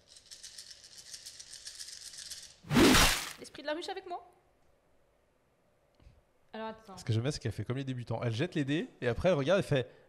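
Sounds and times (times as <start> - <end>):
dice rattling in hands: 0.0 - 2.6
dice thrown onto table: 2.7 - 3.4.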